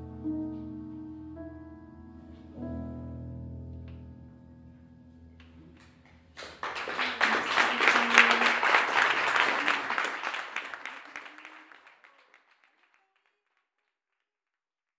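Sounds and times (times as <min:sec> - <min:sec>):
audience applauding: 0:06.4 - 0:13.4.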